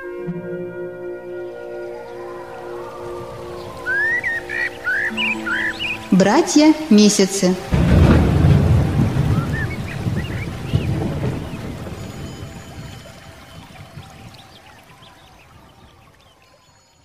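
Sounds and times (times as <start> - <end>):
rain: 0.9 - 17.0
rumbling thunder: 7.6 - 16.0.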